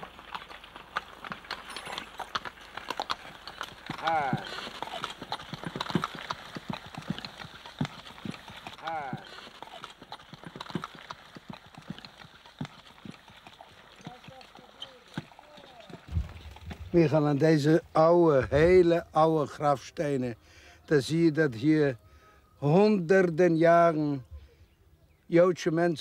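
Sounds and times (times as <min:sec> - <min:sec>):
horse hooves clip-clopping on dirt: 0:00.0 - 0:17.8.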